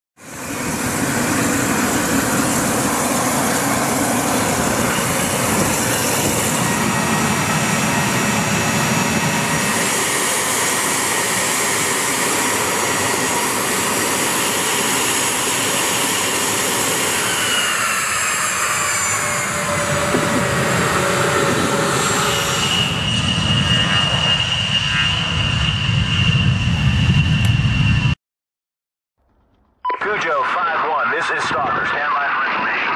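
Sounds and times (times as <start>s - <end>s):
jet engines whining: 0.2s - 28.2s, 29.9s - 32.9s.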